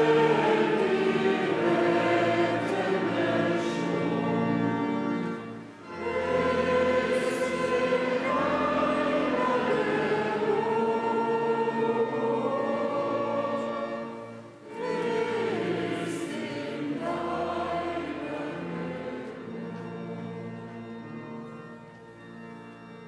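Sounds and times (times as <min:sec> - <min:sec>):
choir singing long held notes: 0:00.0 - 0:22.0.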